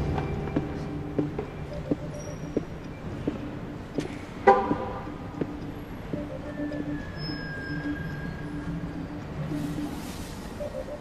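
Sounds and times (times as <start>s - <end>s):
footsteps on hard floor: 0.1s - 3.4s
car horn toot: 4.5s - 5.0s.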